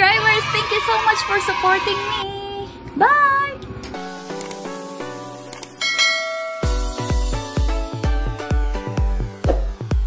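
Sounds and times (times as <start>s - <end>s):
held synth chords: 2.6s - 10.0s
bright bell-like chime: 5.8s - 7.2s
deep pulsing bass beat: 6.6s - 10.0s.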